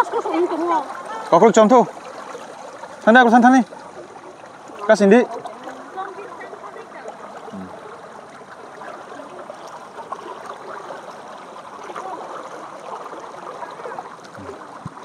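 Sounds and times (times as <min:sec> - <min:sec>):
legs wading and splashing: 0:00.0 - 0:15.0
shallow water running: 0:00.0 - 0:15.0.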